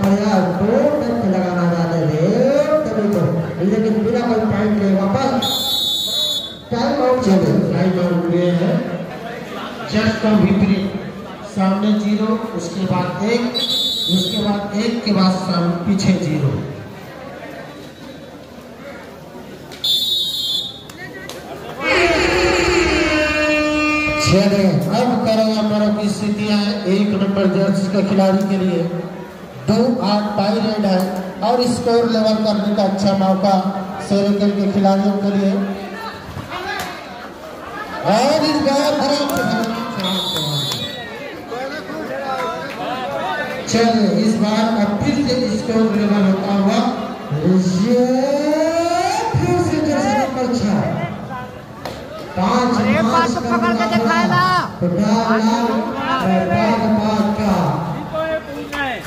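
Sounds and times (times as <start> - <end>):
shrill whistle blast: 5.4 - 6.6, 13.6 - 14.5, 19.8 - 20.8, 21.8 - 24.6, 40.0 - 41.1.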